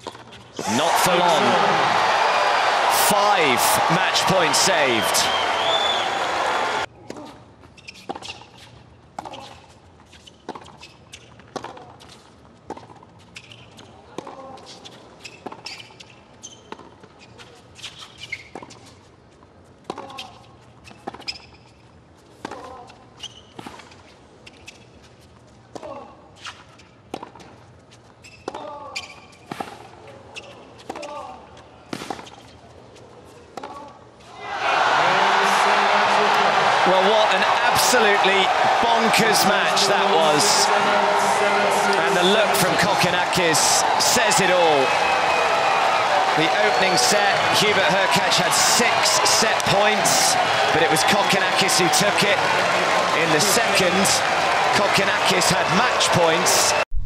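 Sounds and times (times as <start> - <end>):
players grunting: 0.6 - 6.8, 34.6 - 45.0
crowd cheering: 0.6 - 6.9, 34.4 - 56.9
hushed crowd: 0.6 - 6.9, 34.5 - 56.8
shoe squeaks: 7.7 - 11.4, 13.2 - 13.9, 14.6 - 18.8, 20.1 - 21.8, 22.9 - 25.2, 27.9 - 29.5.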